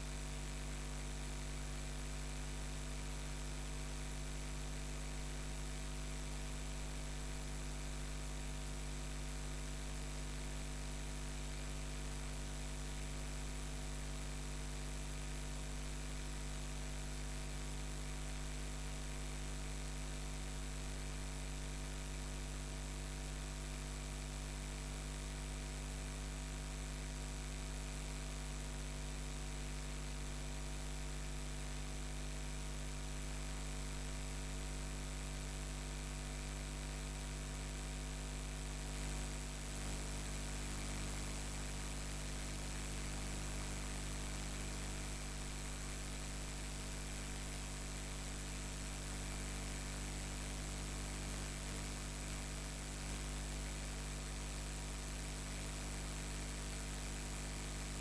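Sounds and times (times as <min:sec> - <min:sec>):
electrical mains hum: 0:56.0 - 0:58.0.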